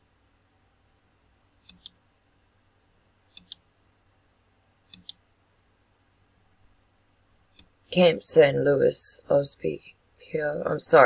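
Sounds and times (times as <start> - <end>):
computer mouse button clicks: 1.6 - 2.0, 3.3 - 3.6, 4.9 - 5.2.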